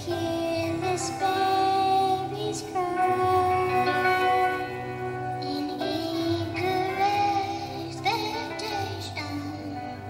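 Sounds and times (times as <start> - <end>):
child singing: 0.0 - 10.0
instrumental backing music: 0.0 - 10.0.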